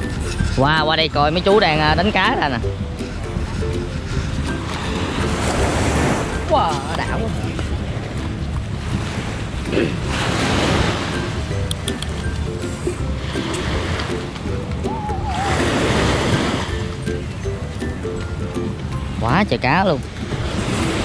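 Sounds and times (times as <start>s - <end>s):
background music: 0.0s - 21.0s
small waves breaking on beach: 8.9s - 11.4s, 15.3s - 17.0s.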